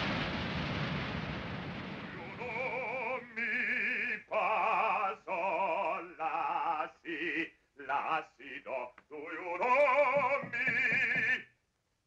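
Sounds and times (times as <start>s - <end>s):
man singing operatic phrases: 2.2s - 11.5s.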